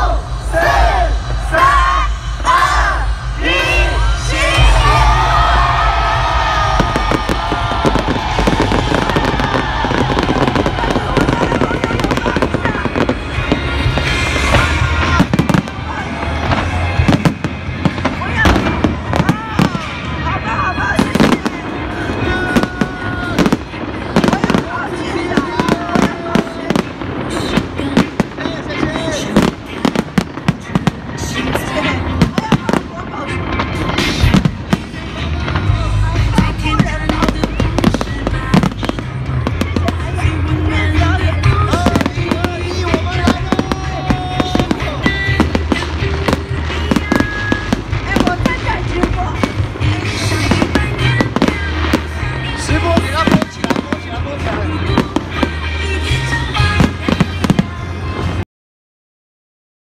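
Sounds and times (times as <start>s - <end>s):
voices: 0.0s - 58.2s
fireworks bangs and crackles: 0.0s - 58.4s
music: 0.0s - 58.4s.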